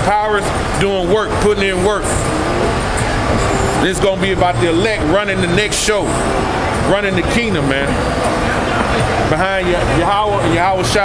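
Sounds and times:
traffic rushing noise: 0.0 - 11.0
vehicle passing close by: 0.5 - 11.0
person speaking: 0.8 - 11.0.

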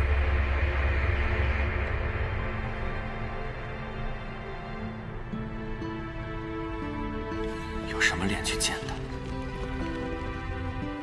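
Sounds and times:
deep rumble with rushing hiss: 0.0 - 11.0.

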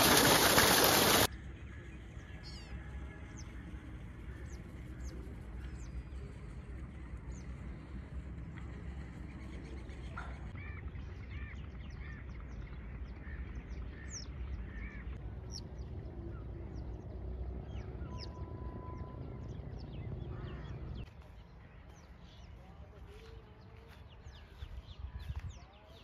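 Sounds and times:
birds calling: 0.0 - 26.0
steady low rumble: 3.3 - 25.8.

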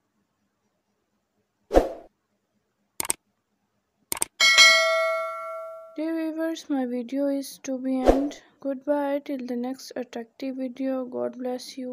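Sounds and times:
short double clicks: 3.0 - 3.2, 4.1 - 4.4
bright bell ding: 4.4 - 6.0.

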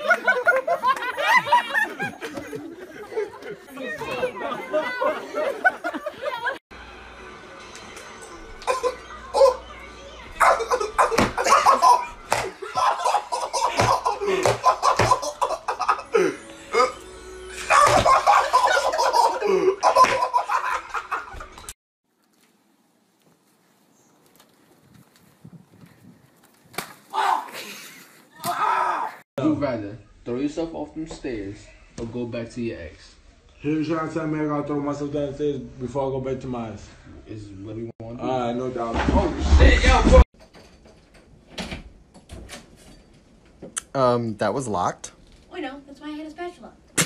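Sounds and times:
indistinct chatter: 2.6 - 13.4.

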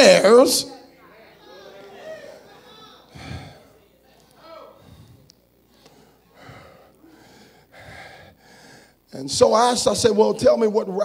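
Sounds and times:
man breathing into microphone: 3.1 - 3.8, 4.8 - 5.3, 5.9 - 9.1.

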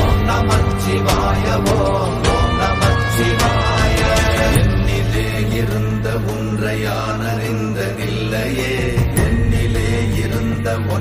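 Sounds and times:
person singing devotional song: 0.0 - 11.0
steady low drone: 0.0 - 11.0.

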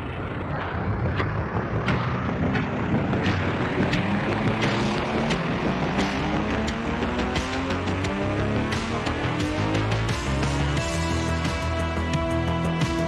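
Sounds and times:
gliding tones: 0.0 - 11.4
low synth tones: 0.0 - 13.0.

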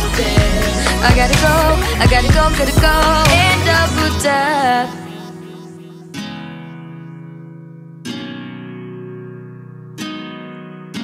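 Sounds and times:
guitar chords strummed and ringing: 0.0 - 11.0.

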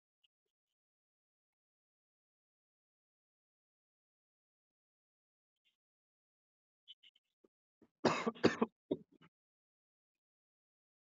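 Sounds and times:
person clearing throat: 8.1 - 8.8.

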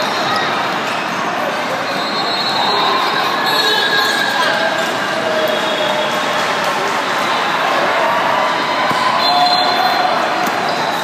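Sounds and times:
din of voices in a hall: 0.0 - 11.0.

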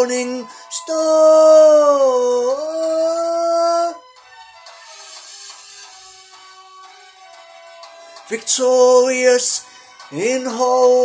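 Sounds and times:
man singing long held note: 0.0 - 4.0.

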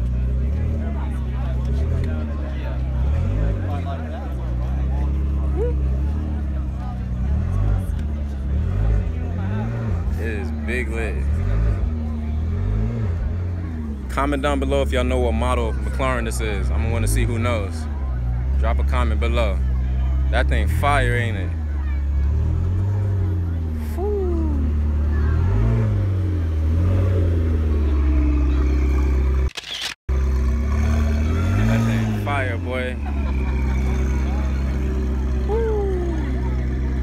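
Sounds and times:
car engine running at low revs: 0.0 - 29.5, 30.1 - 37.0.

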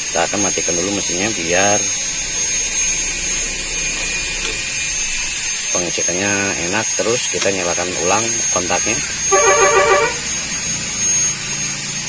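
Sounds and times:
low hum: 0.0 - 11.3
high-pitched whine: 0.0 - 12.0
mechanical hum: 0.0 - 12.0.

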